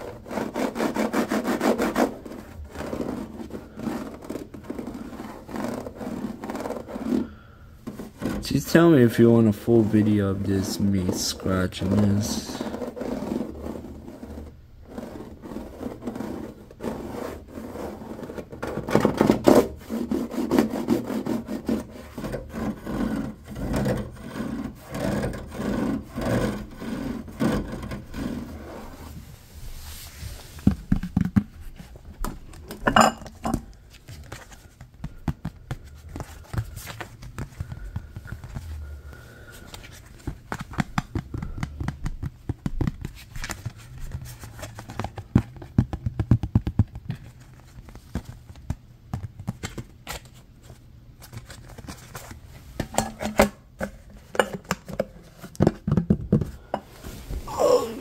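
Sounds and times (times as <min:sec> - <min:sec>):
fingernails scratching plastic grille: 0:12.6 - 0:28.9.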